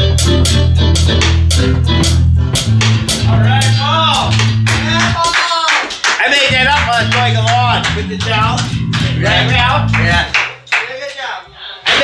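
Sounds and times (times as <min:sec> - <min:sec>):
bass guitar: 0:00.0 - 0:05.2, 0:06.5 - 0:10.4
drum kit: 0:00.0 - 0:10.7.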